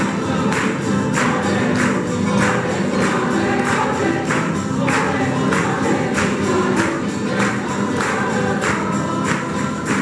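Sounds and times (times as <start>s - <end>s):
group singing in chorus: 0.0s - 10.0s
strummed guitars: 0.0s - 10.0s
tambourines: 0.0s - 10.0s.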